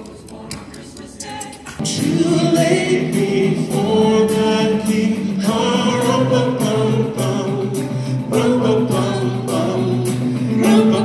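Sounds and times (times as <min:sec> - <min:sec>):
choir singing a carol in harmony: 0:00.0 - 0:11.0
steady beat: 0:00.0 - 0:11.0.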